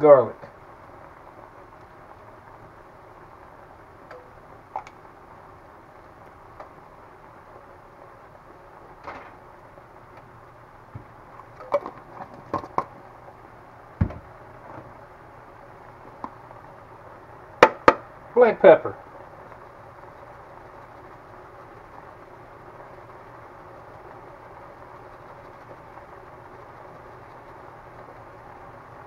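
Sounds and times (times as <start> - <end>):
low background hum: 0.0 - 29.0
dull thump: 14.0 - 14.3.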